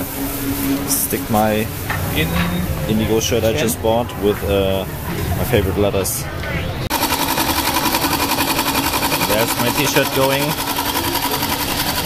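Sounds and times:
embroidery machine stitching: 0:06.9 - 0:12.0.

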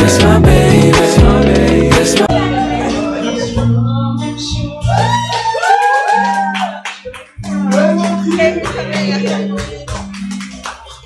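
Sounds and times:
women singing together: 0:00.0 - 0:04.0
music: 0:00.0 - 0:11.0.

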